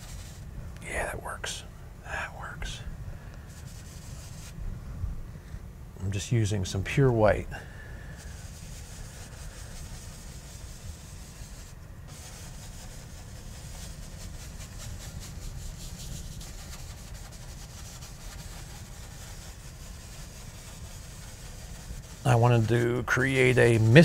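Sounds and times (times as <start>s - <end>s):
paintbrush scrubbing on canvas: 0.0s - 1.1s, 3.5s - 4.6s, 8.1s - 24.0s.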